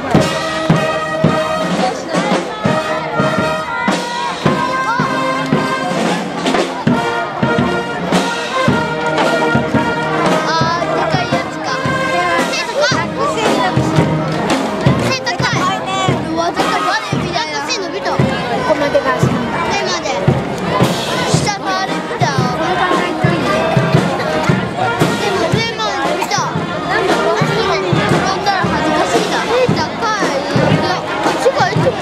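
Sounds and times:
marching brass band playing: 0.0 - 32.0.

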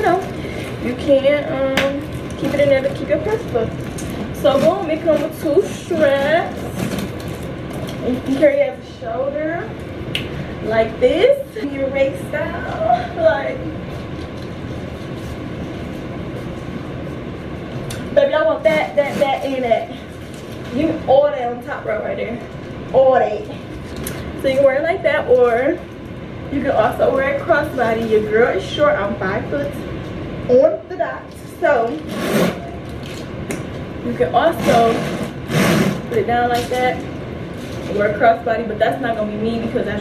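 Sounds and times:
purse rubbing and scraping: 2.2 - 8.4, 18.6 - 21.0, 31.9 - 33.2, 34.4 - 38.0.

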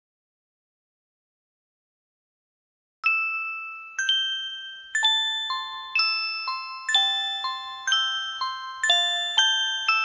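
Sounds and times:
bell-like chime notes: 3.0 - 10.0.

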